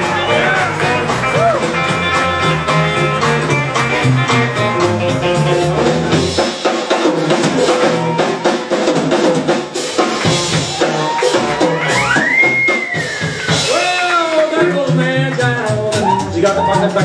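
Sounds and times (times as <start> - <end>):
upright bass: 0.0 - 12.7, 13.4 - 17.0
electric guitar: 0.0 - 16.4
drum kit steady beat: 0.0 - 17.0.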